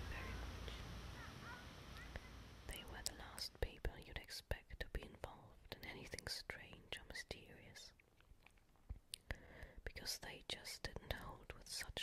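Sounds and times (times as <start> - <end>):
person whispering: 2.7 - 8.0, 9.2 - 12.0.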